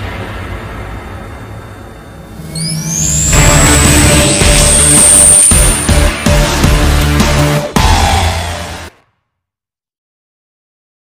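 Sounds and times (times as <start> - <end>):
low rumble: 0.0 - 7.6
low hum: 0.0 - 8.8
high rising whine: 0.0 - 8.9.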